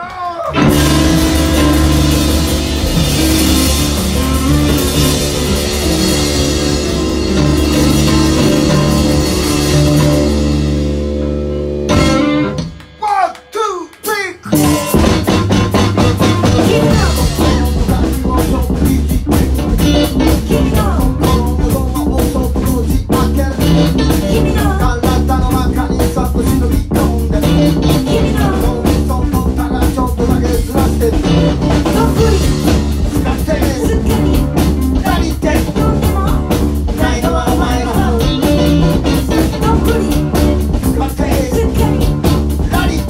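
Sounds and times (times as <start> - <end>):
bass guitar: 0.0 - 43.0
drum kit beat: 0.0 - 43.0
guitar: 0.0 - 43.0
rock band playing: 0.0 - 43.0
electric guitar slides: 0.5 - 12.9.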